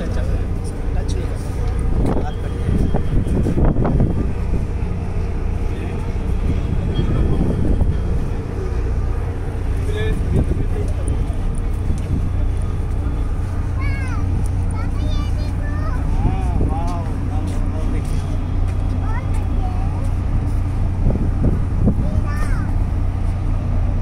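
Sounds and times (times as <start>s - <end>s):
ship engines droning: 0.0s - 24.0s
wind on microphone: 1.5s - 9.4s, 19.6s - 24.0s.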